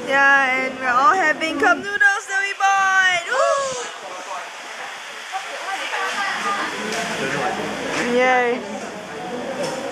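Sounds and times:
people chattering: 0.0 - 9.9.

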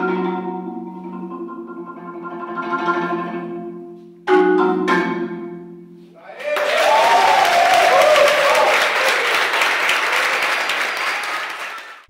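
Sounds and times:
audience applauding: 6.2 - 12.0
voices cheering: 6.2 - 12.0.

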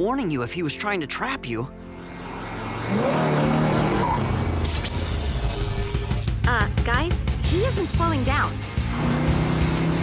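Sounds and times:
cartoon car engine: 2.0 - 6.1, 8.2 - 10.0.

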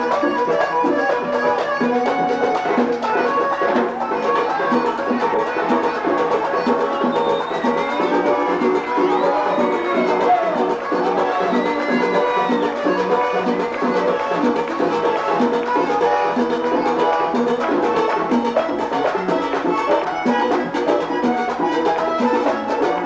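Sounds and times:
button accordion melody: 0.0 - 23.0
steady percussion beat: 0.0 - 23.0.

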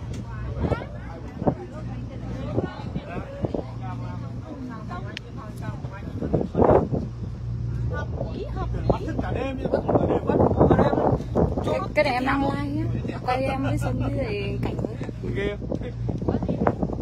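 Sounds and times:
people chatting: 0.0 - 7.0, 7.8 - 16.8
boat engine humming: 0.0 - 17.0.

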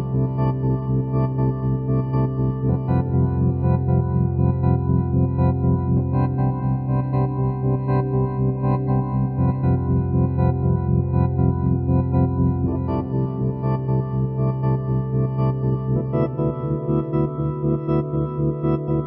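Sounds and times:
electronic organ chords with tremolo: 0.0 - 19.0.

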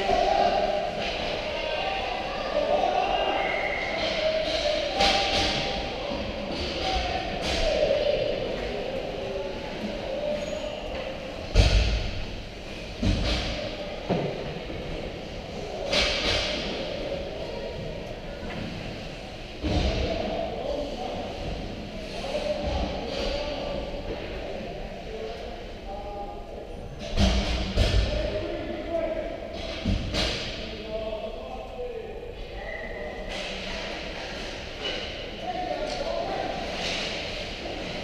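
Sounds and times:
echoing voices in arena: 0.0 - 38.0.

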